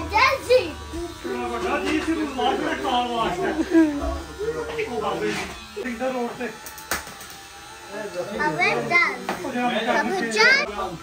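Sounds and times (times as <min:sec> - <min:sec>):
child's voice: 0:00.0 - 0:01.4, 0:08.4 - 0:09.3, 0:09.9 - 0:10.7
electric hair clippers buzzing: 0:00.0 - 0:11.0.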